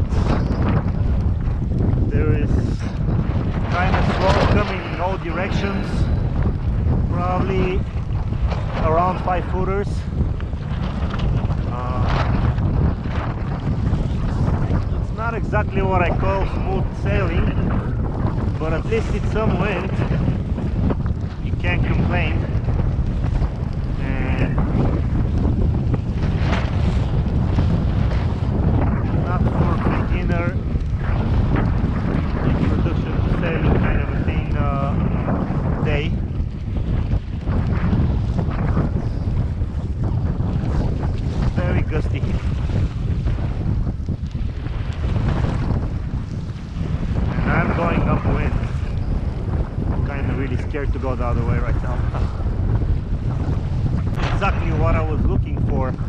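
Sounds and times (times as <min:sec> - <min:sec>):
choppy water washing: 0:00.0 - 0:56.0
wind blowing across microphone: 0:00.0 - 0:56.0.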